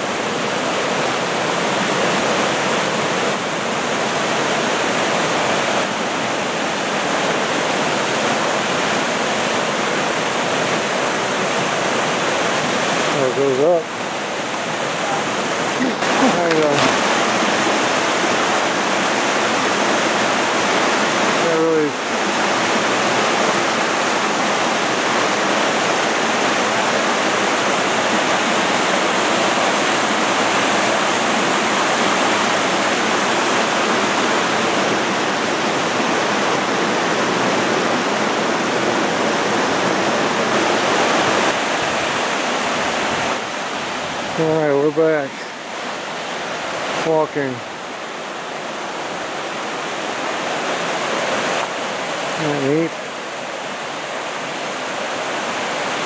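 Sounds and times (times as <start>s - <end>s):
creek water rushing over boulders: 0.0s - 56.0s.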